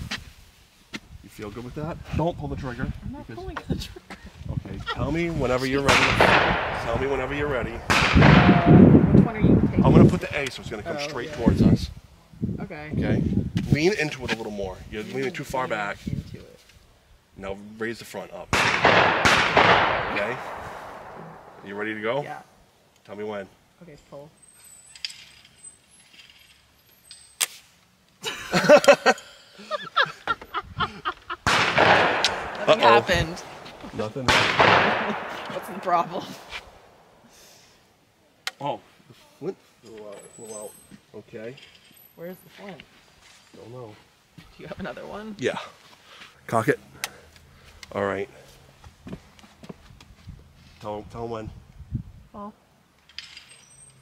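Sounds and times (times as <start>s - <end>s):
voices: 1.3s - 16.7s, 28.5s - 36.7s.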